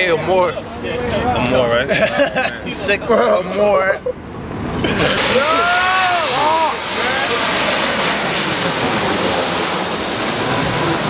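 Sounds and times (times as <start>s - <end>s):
jet airplane passing overhead: 4.2s - 11.0s.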